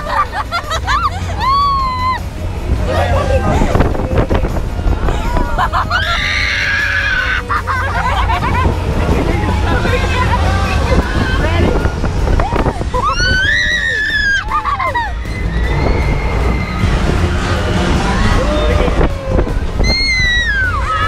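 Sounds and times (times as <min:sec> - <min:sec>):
girls screaming and laughing: 0:00.0 - 0:04.4, 0:05.0 - 0:09.5, 0:10.2 - 0:21.0
wind rumble on microphone: 0:00.0 - 0:21.0.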